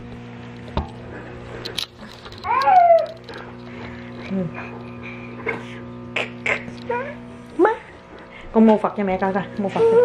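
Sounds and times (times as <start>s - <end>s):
toddler whining: 2.4s - 3.2s, 9.8s - 10.0s.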